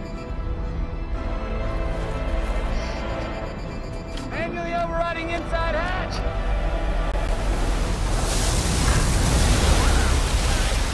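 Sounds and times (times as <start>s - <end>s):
giant wave of rushing water: 6.4s - 10.9s.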